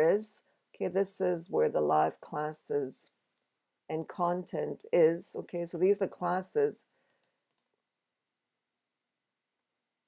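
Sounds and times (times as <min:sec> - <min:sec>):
computer mouse clicks: 0:07.0 - 0:07.8.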